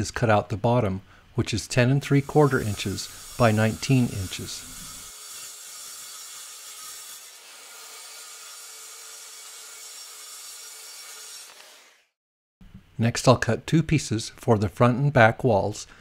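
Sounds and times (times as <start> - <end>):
circular saw cutting plywood: 2.1 - 12.2.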